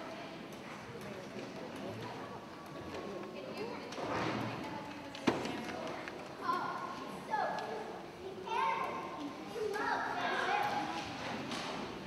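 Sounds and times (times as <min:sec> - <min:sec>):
children speaking: 0:04.6 - 0:11.7.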